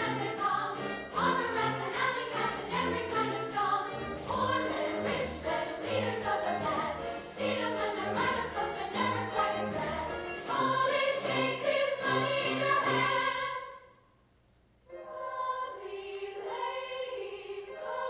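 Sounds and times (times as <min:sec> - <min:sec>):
choir singing: 0:00.0 - 0:14.0, 0:14.9 - 0:18.0.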